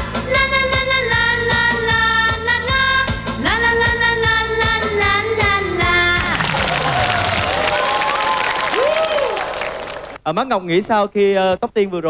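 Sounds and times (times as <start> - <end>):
song with backing music: 0.0 - 8.0
audience applauding and cheering: 6.0 - 10.2.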